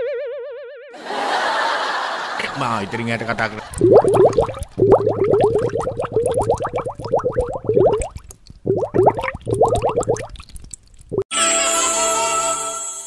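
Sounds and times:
bubbling water bloops: 3.3 - 11.3.

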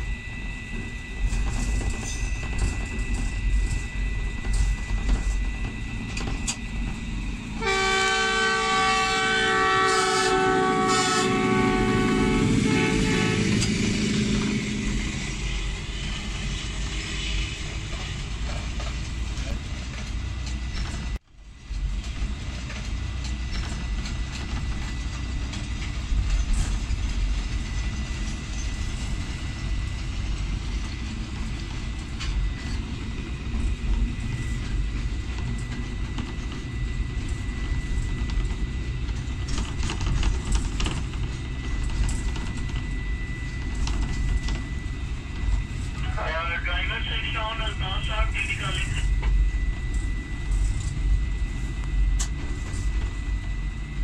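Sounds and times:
train rumbling on rails: 0.0 - 54.0
locomotive horn blast: 7.6 - 13.8.

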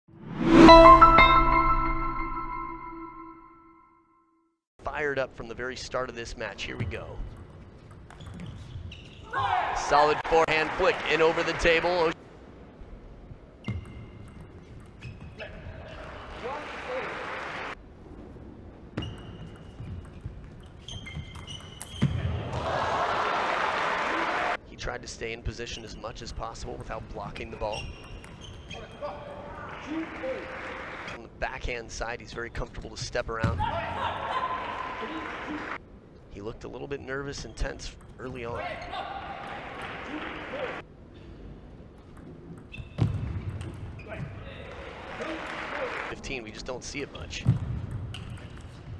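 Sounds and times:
shoes squeaking on floor: 8.1 - 9.4, 13.6 - 15.6, 19.0 - 22.2, 27.6 - 29.3
crowd applause and cheering: 9.8 - 12.2, 16.2 - 17.8, 22.5 - 24.6, 29.6 - 31.2.

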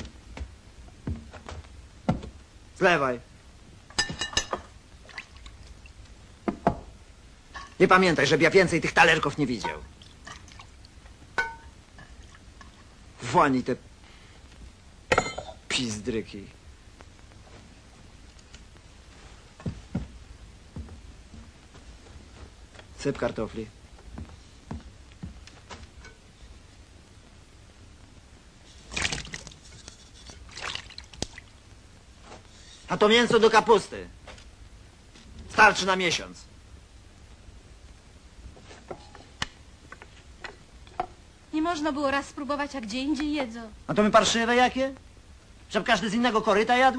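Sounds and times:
crockery clink: 15.1 - 15.6.

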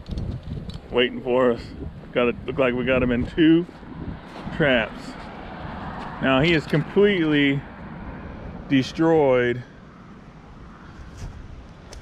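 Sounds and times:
wind noise on microphone: 0.0 - 7.0, 10.6 - 12.0.

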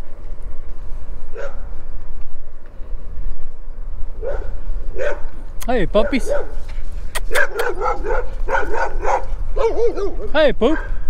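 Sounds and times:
wind rumble on microphone: 0.0 - 11.0
dogs barking: 1.3 - 1.8, 4.2 - 11.0.

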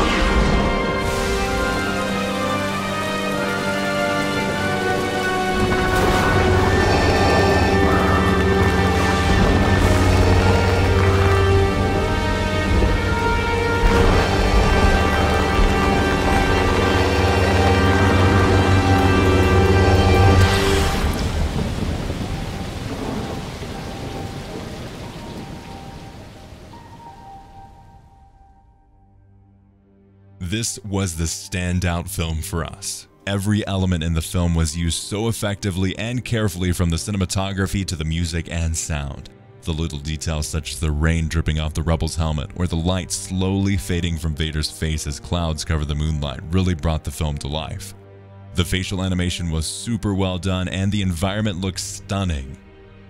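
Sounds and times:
held-note music score: 0.0 - 21.4
deep rumbling: 0.0 - 25.9
steady rain: 0.0 - 27.7
low rumble of thunder: 20.2 - 26.6.

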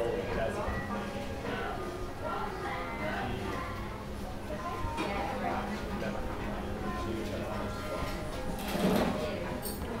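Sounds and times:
people talking: 0.0 - 8.5.

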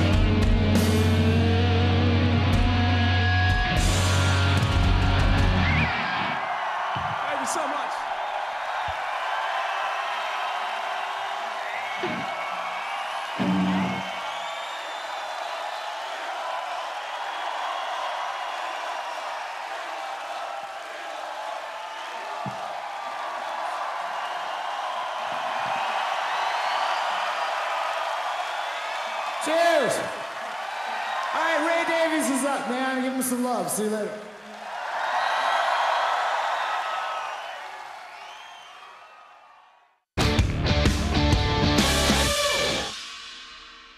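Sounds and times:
crowd cheering and whistling: 0.0 - 43.9.

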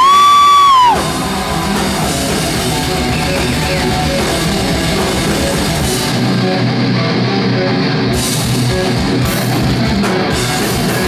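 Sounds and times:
deathcore band playing: 0.0 - 11.0.

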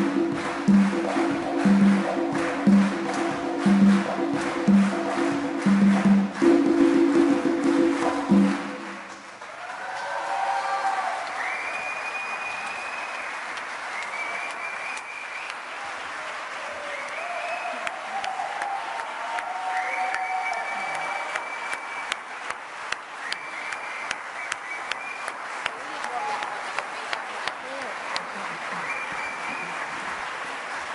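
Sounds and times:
audience applauding: 0.0 - 30.9
cheering voices: 8.8 - 30.9.

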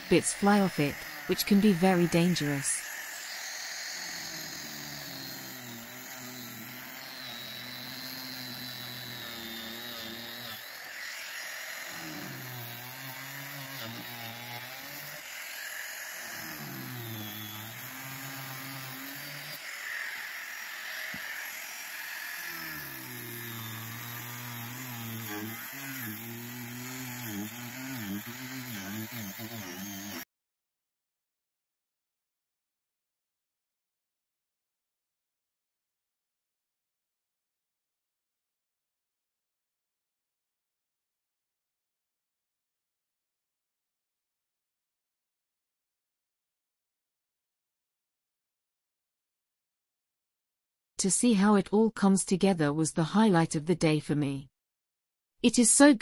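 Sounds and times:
angle grinder cutting: 0.0 - 30.3.

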